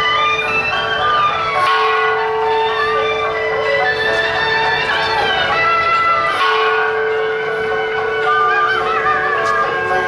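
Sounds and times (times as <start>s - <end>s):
ringing bell-like tones: 0.0s - 10.0s
wavering wind instrument melody: 0.0s - 10.0s.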